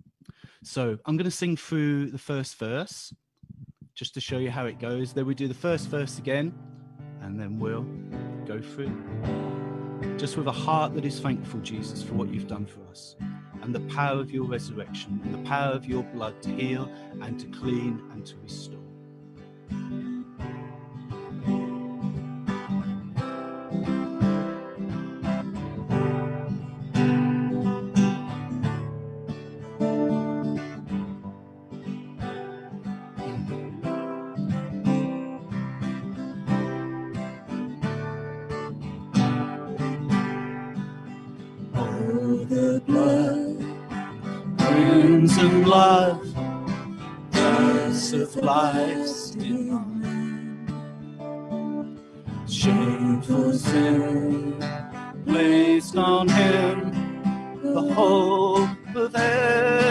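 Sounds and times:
acoustic guitar strumming: 0:04.3 - 0:59.9
person singing: 0:41.8 - 0:46.7, 0:47.3 - 0:50.9, 0:52.5 - 0:59.9.

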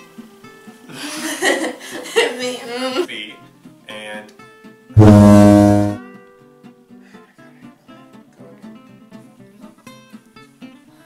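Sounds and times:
low buzzer: 0:05.0 - 0:06.0.

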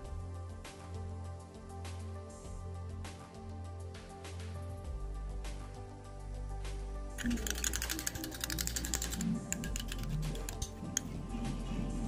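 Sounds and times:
background music: 0:00.0 - 0:12.0
metal spoon tapping glass bowl: 0:07.2 - 0:11.1.

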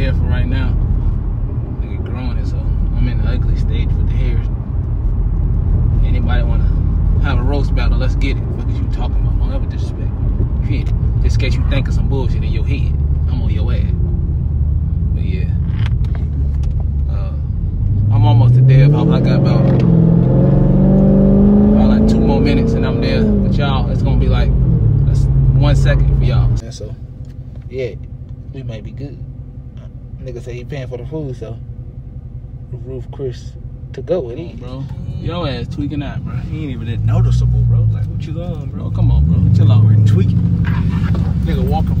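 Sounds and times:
car engine and road rumble: 0:00.0 - 0:42.0.

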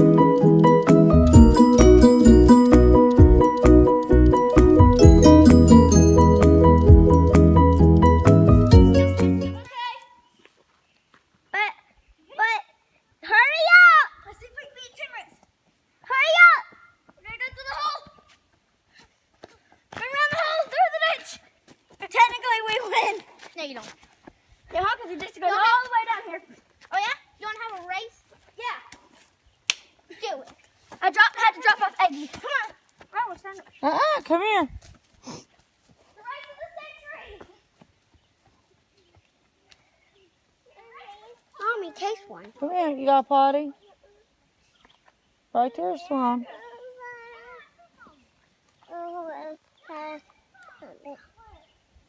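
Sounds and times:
footsteps on gravel: 0:17.1 - 0:29.4, 0:30.4 - 0:39.3
child calling out: 0:46.5 - 0:48.0.

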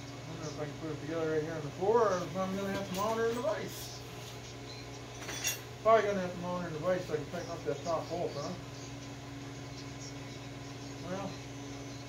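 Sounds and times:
small metal parts clinking: 0:05.2 - 0:05.7.

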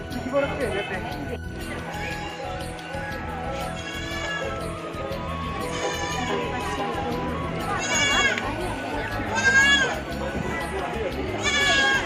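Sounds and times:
crowd chatter: 0:00.0 - 0:12.0
goat bleating: 0:03.7 - 0:04.6, 0:05.6 - 0:06.2, 0:07.8 - 0:08.4, 0:09.3 - 0:10.1, 0:11.4 - 0:12.0.

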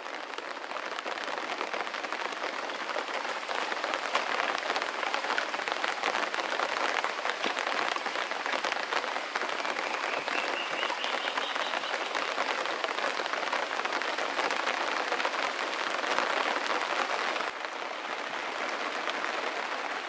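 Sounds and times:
rain falling on foliage: 0:00.0 - 0:20.0.

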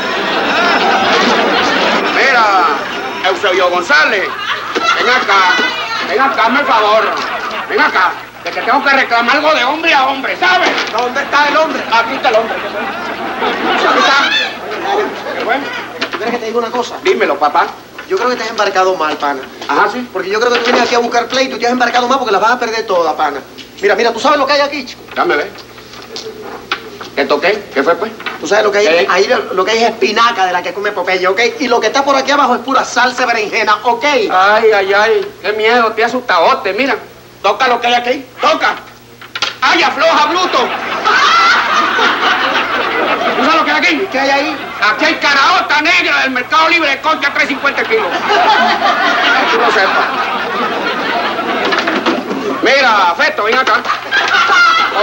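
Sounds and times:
audience laughter: 0:00.0 - 0:17.4, 0:40.0 - 0:45.6, 0:47.3 - 0:55.0.

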